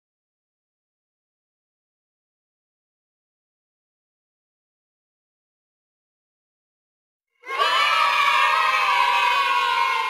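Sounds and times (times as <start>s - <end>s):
children cheering: 7.4s - 10.0s.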